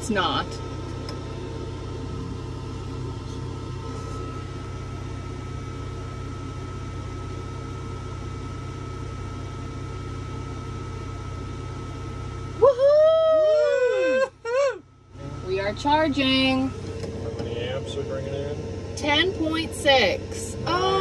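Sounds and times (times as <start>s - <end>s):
high whine: 0.0s - 21.0s
low mechanical hum: 0.0s - 21.0s.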